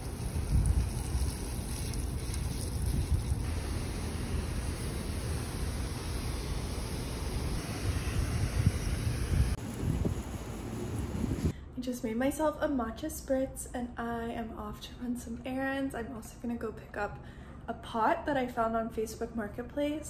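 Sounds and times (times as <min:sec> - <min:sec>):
wind buffeting microphone: 0:00.0 - 0:03.6, 0:07.1 - 0:11.5
hose nozzle spraying water: 0:00.0 - 0:11.5.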